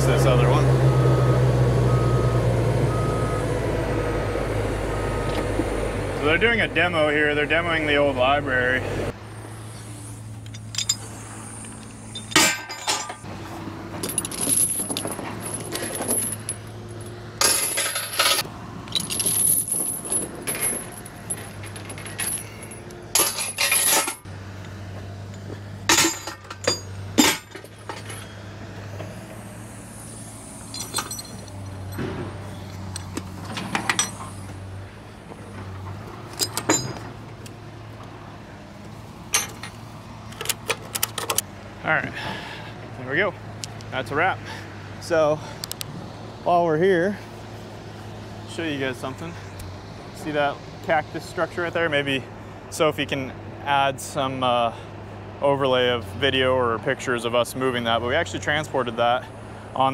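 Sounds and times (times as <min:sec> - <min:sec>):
truck engine idling: 0:00.0 - 0:52.7
chains and hooks clanking: 0:10.4 - 0:13.3, 0:14.0 - 0:24.3, 0:25.3 - 0:28.4, 0:30.5 - 0:34.5, 0:36.3 - 0:37.1, 0:39.3 - 0:41.4.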